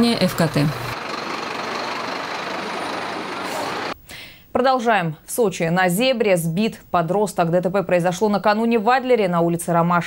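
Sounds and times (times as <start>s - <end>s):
garbage truck engine running: 0.0s - 4.0s.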